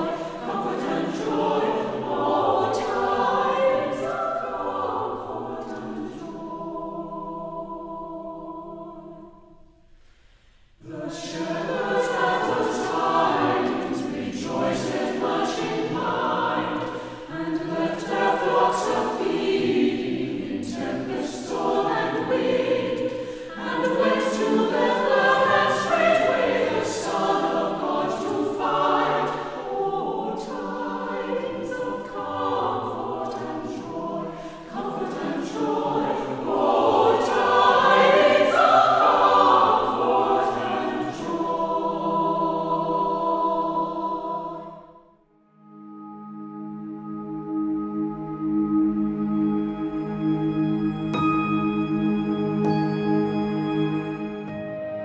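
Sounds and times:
choir singing: 0.0 - 9.9, 10.8 - 55.0.

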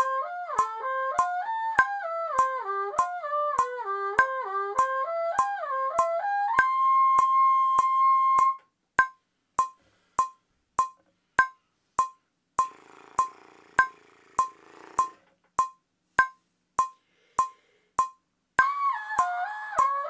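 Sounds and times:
metronome clicking: 0.0 - 20.0.

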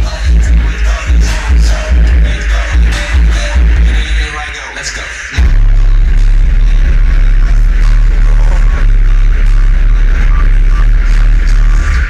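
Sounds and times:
bass-heavy music through subwoofer: 0.0 - 12.0.

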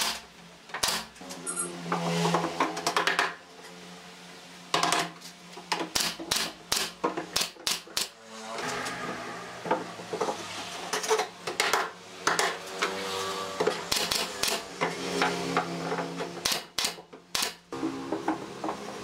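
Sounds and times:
nail gun firing into wood: 13.9 - 14.6, 16.4 - 17.6.

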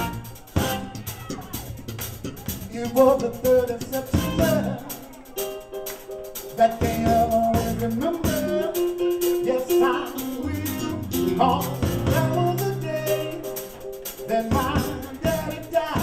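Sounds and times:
steady bass line: 0.0 - 5.8, 6.4 - 16.0
band playing drums guitar keyboards: 0.0 - 16.0
vocal group singing: 2.4 - 5.4, 6.5 - 13.6, 14.2 - 16.0.

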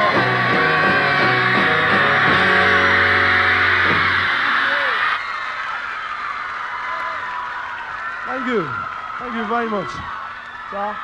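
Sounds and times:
rock band chord ringing out: 0.0 - 4.7
crowd screaming: 0.0 - 11.0.

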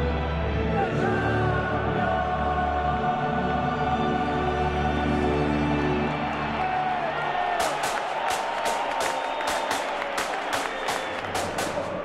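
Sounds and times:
choir singing: 0.6 - 6.1.

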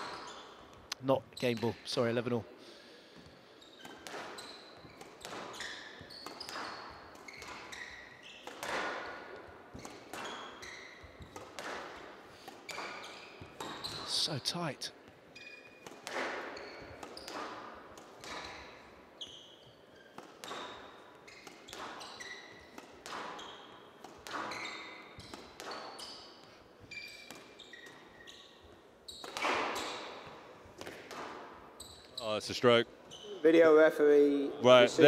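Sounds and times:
squash ball hitting rackets and walls: 0.0 - 0.8, 3.1 - 14.2, 15.0 - 32.2
sneaker squeaks on court floor: 0.0 - 1.9, 3.5 - 14.4, 15.2 - 33.6.

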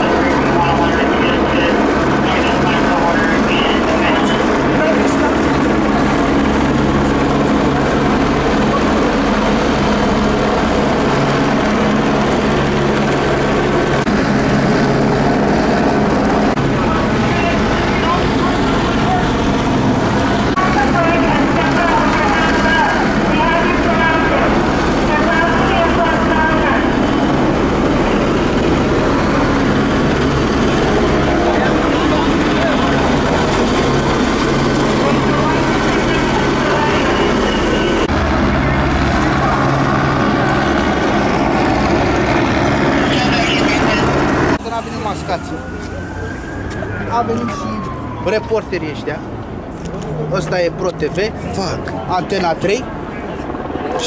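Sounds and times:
indistinct voices: 0.0 - 13.6, 16.4 - 54.0
engine drone: 0.0 - 54.0.

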